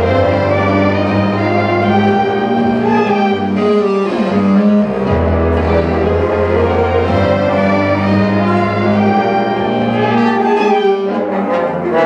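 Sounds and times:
concert band playing: 0.0s - 12.0s.

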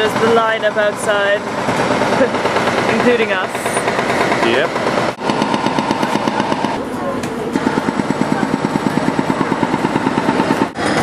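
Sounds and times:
small engine chugging: 0.0s - 6.8s, 7.6s - 11.0s
voices in street: 5.8s - 10.8s.

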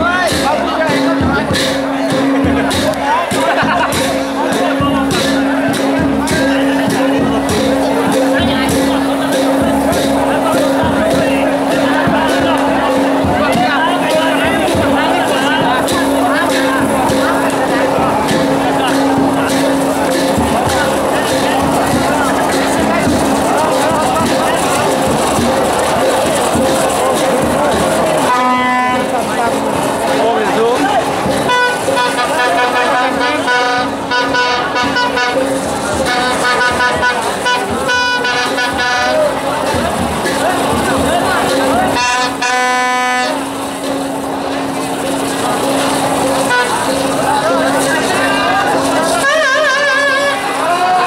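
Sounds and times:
crowd voices: 0.0s - 51.0s
firework fountain hissing: 0.0s - 51.0s
music: 0.0s - 51.0s
steady reedy tone: 0.0s - 51.0s
people shouting: 48.2s - 51.0s.

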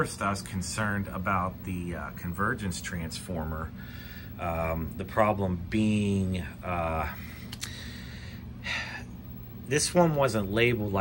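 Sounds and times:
steady low hum: 0.0s - 11.0s
man breathing in: 3.8s - 4.4s, 7.2s - 9.1s.

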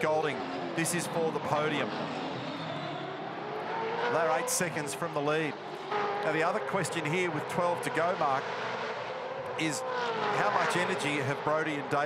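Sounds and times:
race car engines at full throttle: 0.0s - 12.0s.

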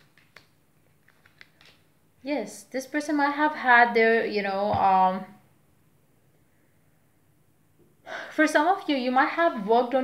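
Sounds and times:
cards shuffled by hand clicking: 0.0s - 1.9s.

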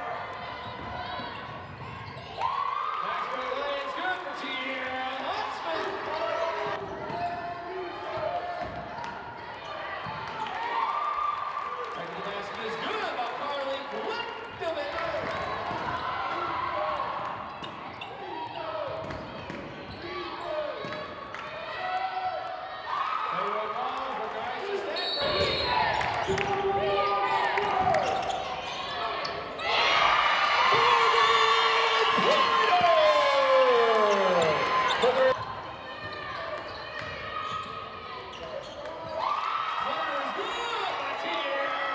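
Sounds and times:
voices of players and crowd: 0.0s - 41.9s
sneakers squeaking on hardwood: 27.1s - 29.6s, 34.0s - 39.2s.

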